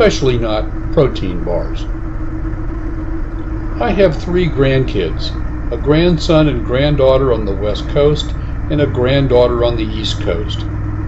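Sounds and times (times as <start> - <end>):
motorcycle engine cruising: 0.0 - 11.0
road noise: 0.0 - 11.0.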